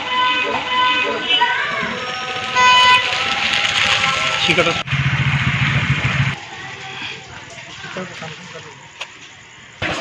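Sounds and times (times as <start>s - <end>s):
vehicle horn toot: 0.0s - 4.7s
street noise: 0.0s - 10.0s.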